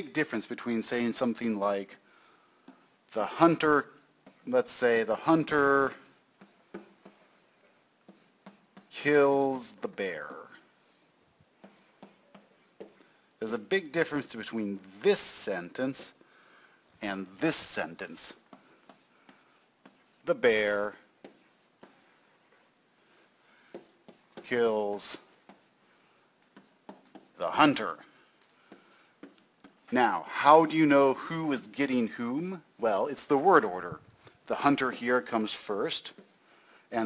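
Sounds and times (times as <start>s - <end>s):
stylus scratching on surface: 0.0s - 2.0s, 2.6s - 16.2s, 17.0s - 37.0s
stylus tapping: 5.9s - 9.0s, 11.4s - 13.4s, 23.6s - 27.4s, 28.4s - 29.9s.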